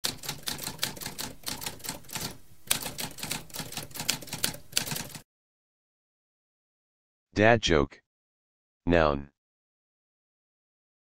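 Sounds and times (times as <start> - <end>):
typewriter typing: 0.0 - 5.2.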